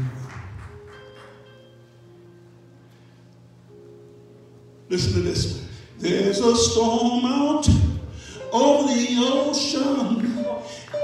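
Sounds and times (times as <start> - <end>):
keyboard sustained chords: 0.0 - 11.0
man preaching: 4.9 - 11.0.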